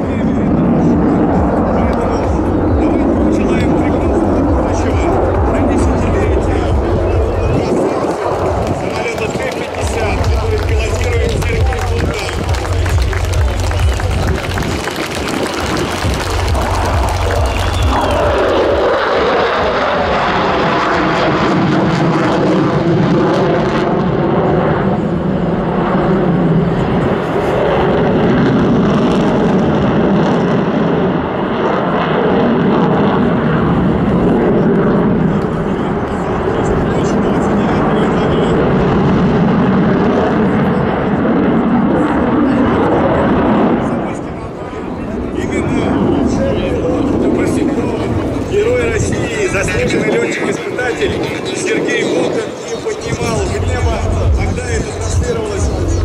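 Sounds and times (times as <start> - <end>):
fighter jet roaring: 0.0 - 56.0.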